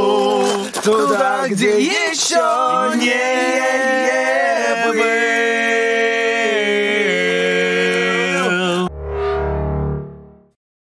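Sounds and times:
male voices singing: 0.0s - 8.9s.

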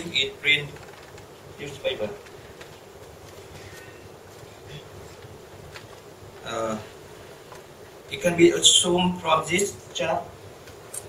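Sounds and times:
low buzzing hum: 0.0s - 11.0s.

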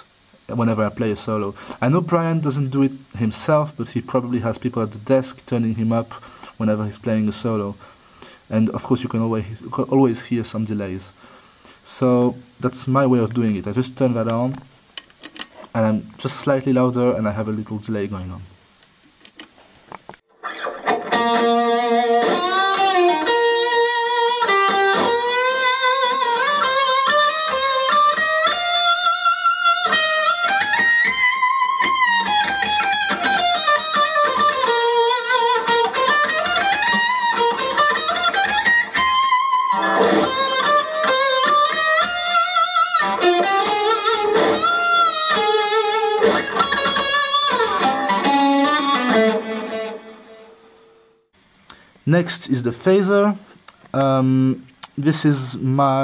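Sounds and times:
electric guitar solo: 20.3s - 51.2s.

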